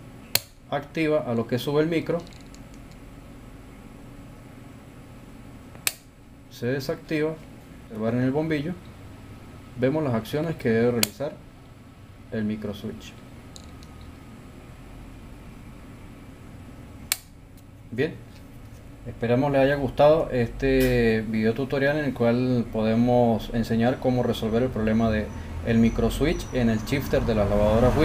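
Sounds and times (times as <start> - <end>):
sharp click: 0.3 - 0.6, 5.7 - 6.1, 11.0 - 11.3, 17.1 - 17.7.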